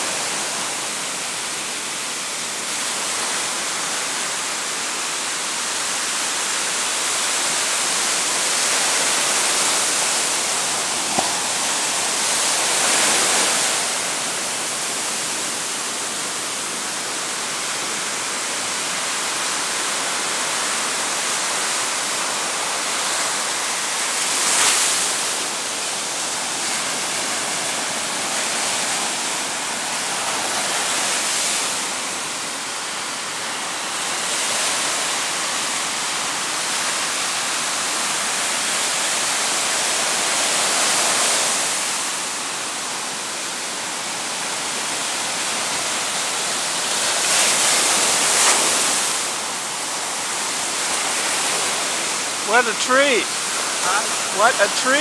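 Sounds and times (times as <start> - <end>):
ocean surf breaking on beach: 0.0 - 55.0.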